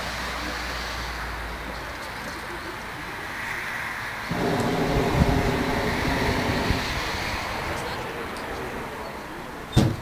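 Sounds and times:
propane burner firing: 0:04.3 - 0:08.0.

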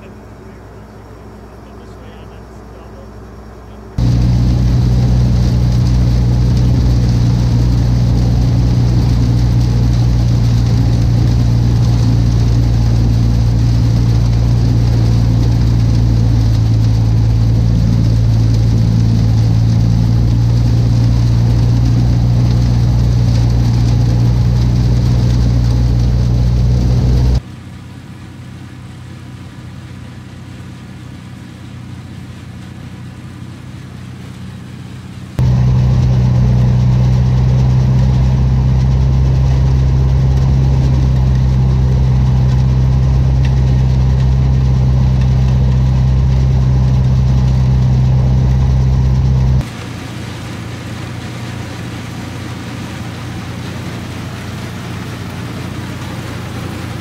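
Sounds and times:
distant engine hum: 0:00.0 - 0:57.0
harvesting machinery engines: 0:00.0 - 0:57.0.

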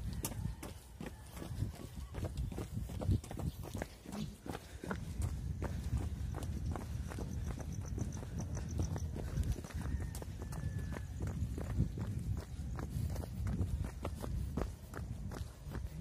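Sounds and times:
jogging footsteps: 0:00.0 - 0:16.0.

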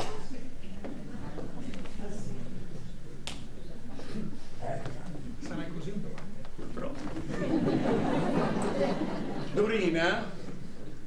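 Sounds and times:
faint voices: 0:00.0 - 0:07.6.

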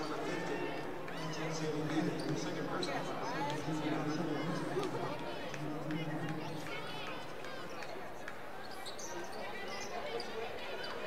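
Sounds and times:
sneakers squeaking: 0:01.5 - 0:03.3, 0:07.7 - 0:11.0.

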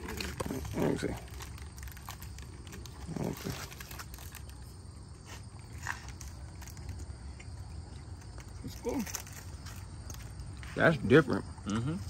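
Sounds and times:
snack crunching and chewing: 0:00.0 - 0:10.8.

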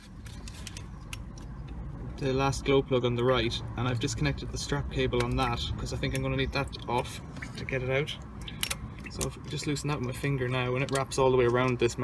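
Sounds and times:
light clicks among hoses: 0:00.1 - 0:02.5, 0:03.1 - 0:12.0.

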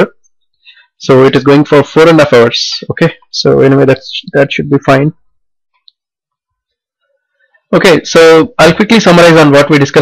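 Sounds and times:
man's voice: 0:01.0 - 0:05.2, 0:07.7 - 0:10.0.

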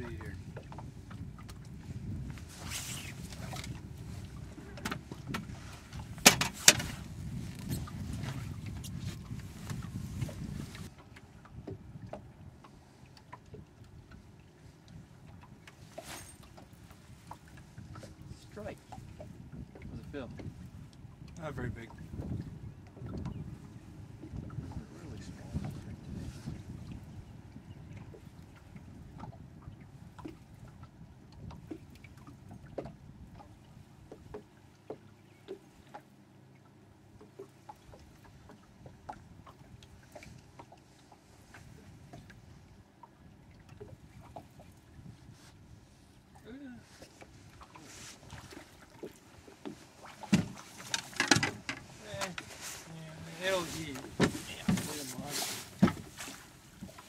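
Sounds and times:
low wind rumble: 0:00.0 - 0:34.7
water lapping against hull: 0:00.0 - 0:57.0.

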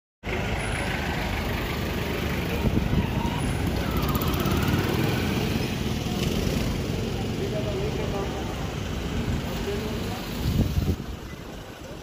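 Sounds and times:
vehicles passing: 0:00.2 - 0:12.0.

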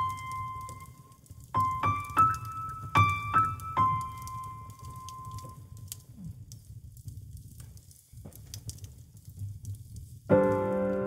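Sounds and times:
wood fire crackling: 0:00.0 - 0:11.0.

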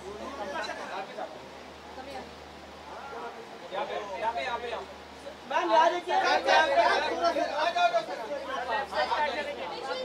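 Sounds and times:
voices talking and calling out: 0:00.0 - 0:10.0.

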